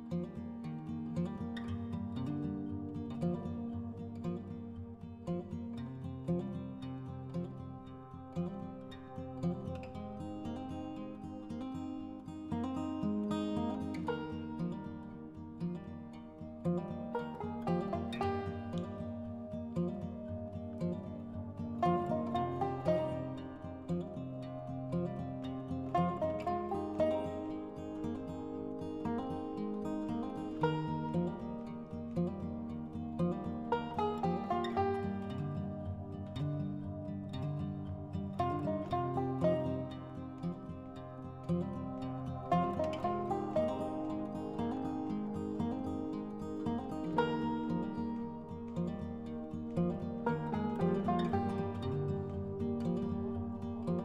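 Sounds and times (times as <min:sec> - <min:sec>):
instrumental music with plucked strings: 0:00.0 - 0:54.0.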